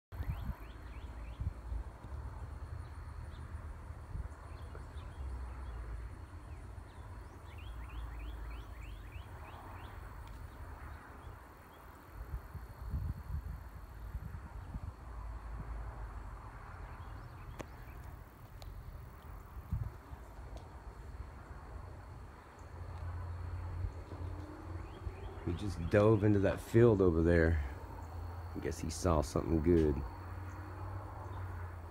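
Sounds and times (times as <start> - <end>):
low rumble on microphone: 12.2 - 30.6.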